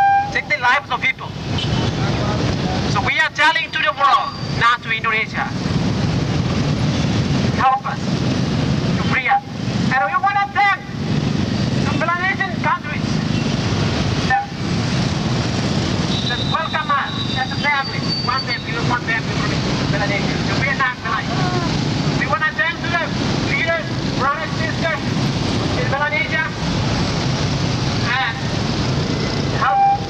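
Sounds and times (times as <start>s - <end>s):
street traffic: 0.0s - 30.0s
people talking: 16.3s - 25.1s, 28.0s - 28.5s.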